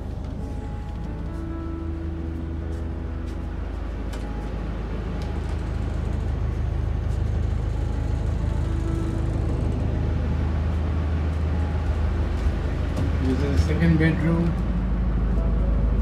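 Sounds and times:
boat engine droning: 0.0 - 16.0.

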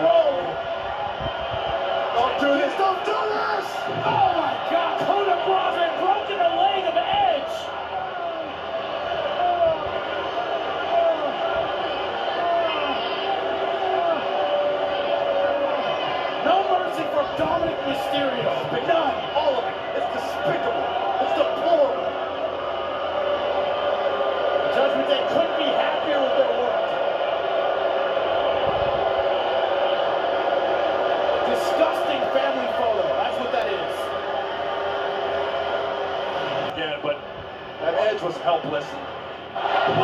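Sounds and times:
arena crowd noise: 0.0 - 40.0
man commentating excitedly: 2.1 - 7.8, 16.4 - 22.1, 31.4 - 33.9.

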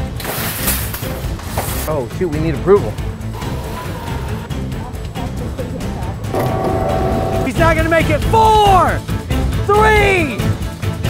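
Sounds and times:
music with heavy bass line: 6.3 - 8.7
steady held tone: 6.4 - 8.5.

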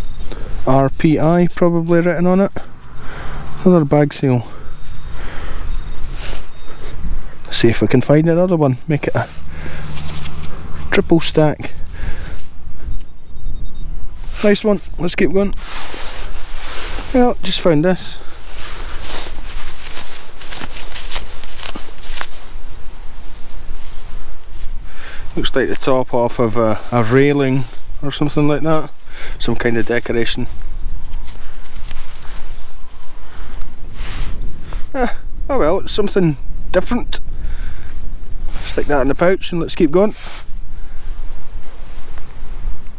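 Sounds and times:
gloved hands rustling and scraping: 0.0 - 13.2, 14.0 - 35.2, 38.0 - 42.9
wind buffeting microphone: 0.0 - 35.5
brief rustle: 4.7 - 7.5, 9.1 - 10.9, 18.2 - 24.8, 30.4 - 34.9.

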